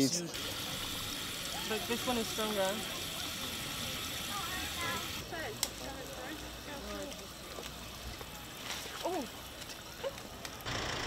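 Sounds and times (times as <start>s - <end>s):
water running from fountain: 0.2s - 11.0s
people chatting: 1.5s - 9.4s.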